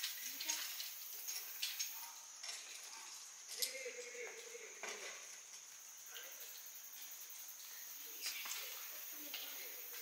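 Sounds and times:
faint high hiss: 0.0 - 10.0.

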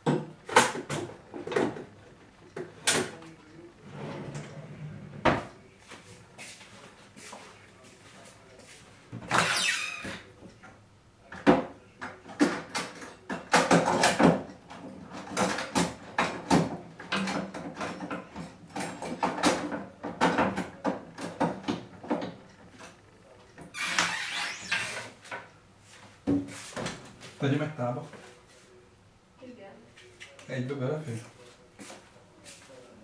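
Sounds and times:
kitchen knocks and clatter: 0.0 - 2.0, 11.3 - 23.0.

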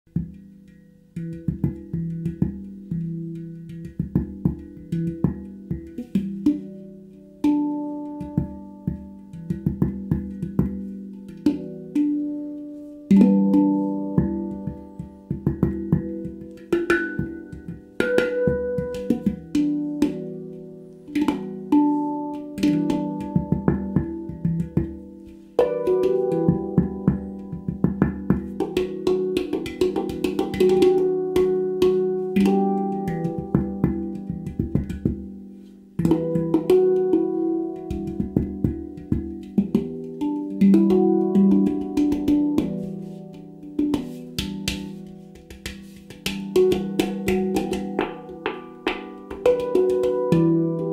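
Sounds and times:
finger taps on handpan: 0.1 - 50.9
handpan ringing notes: 0.1 - 50.9.

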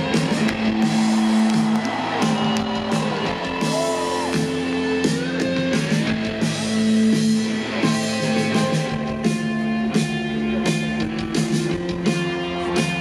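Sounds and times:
drums and cymbals: 0.0 - 13.0
rock band playing live: 0.0 - 13.0
audience whoops: 0.3 - 5.4.

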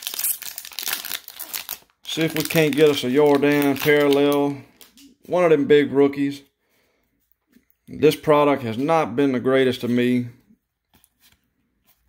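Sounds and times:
foil wrapper crinkling and tearing: 0.0 - 5.0.

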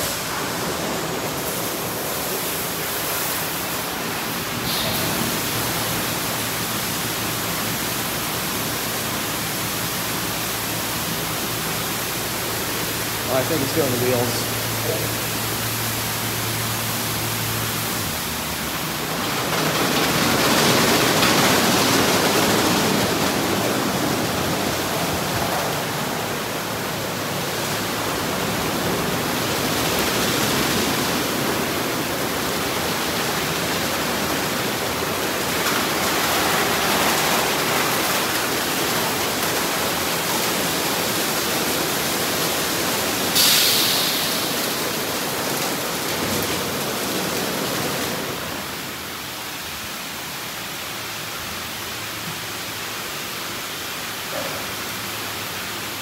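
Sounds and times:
water spray hissing: 0.0 - 18.7, 43.0 - 45.3.

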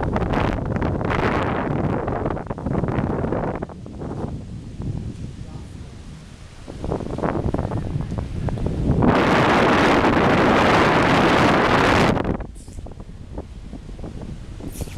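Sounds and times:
wind buffeting microphone: 0.0 - 14.9
loud steady hiss: 14.6 - 14.9.

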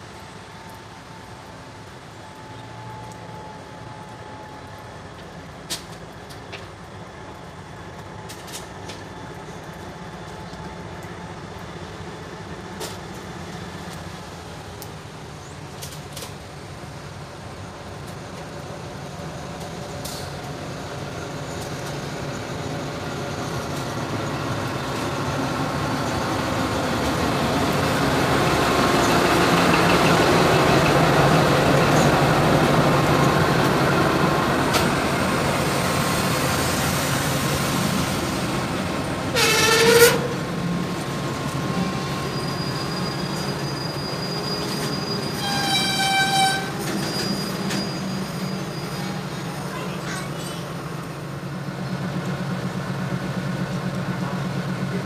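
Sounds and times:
locomotive engine passing: 1.6 - 55.0.

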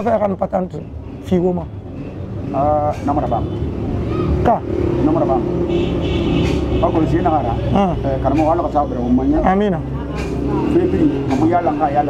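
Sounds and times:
people talking: 0.0 - 1.7, 2.6 - 3.5, 6.8 - 12.0.

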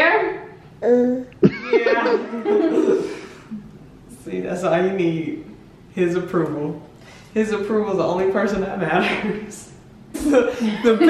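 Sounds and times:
person chuckling and laughing: 1.4 - 3.4.

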